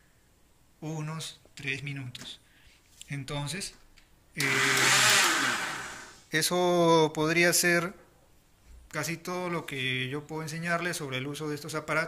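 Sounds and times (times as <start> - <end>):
food processor motor whirring: 4.4 - 6.2.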